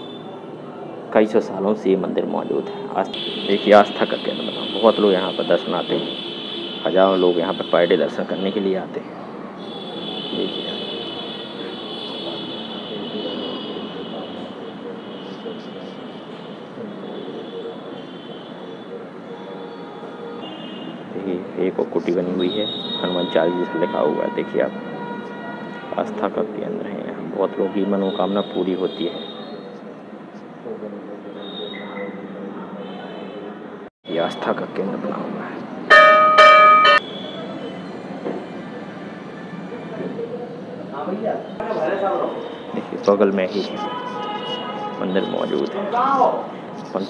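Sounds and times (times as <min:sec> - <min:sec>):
steady background din: 0:35.8 - 0:40.9
temple bell ringing: 0:35.9 - 0:37.1.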